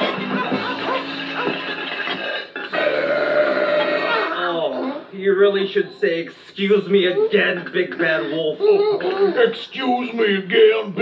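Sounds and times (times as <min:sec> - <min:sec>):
background music: 0:00.0 - 0:04.3
comic burp: 0:02.6 - 0:04.4.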